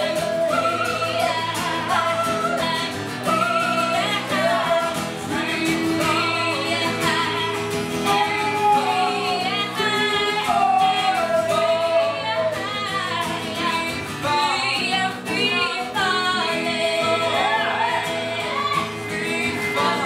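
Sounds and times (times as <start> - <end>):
man and woman singing: 0.0 - 20.0
strummed acoustic guitar: 0.0 - 20.0.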